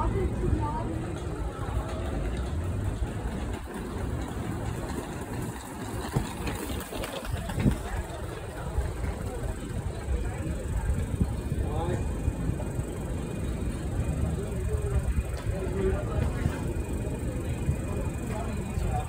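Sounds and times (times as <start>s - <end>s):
people's voices: 0.0s - 19.0s
traffic rumble: 0.0s - 19.0s
tram passing: 0.0s - 19.0s.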